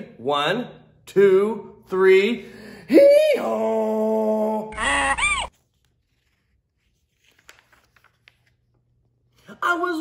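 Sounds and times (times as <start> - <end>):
vocal whoop: 2.9 - 5.5
man imitating donkey bray: 3.0 - 5.5.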